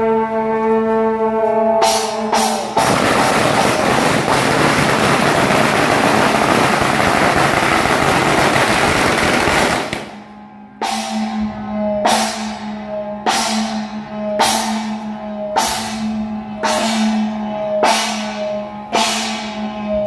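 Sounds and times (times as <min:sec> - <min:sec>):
firecrackers crackling: 0:02.0 - 0:10.2
sharp cracks: 0:02.8 - 0:10.2.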